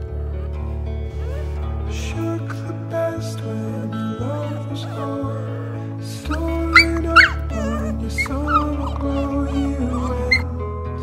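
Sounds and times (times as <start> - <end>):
background music: 0.0 - 11.0
puppy whimpering and yipping: 4.9 - 10.5.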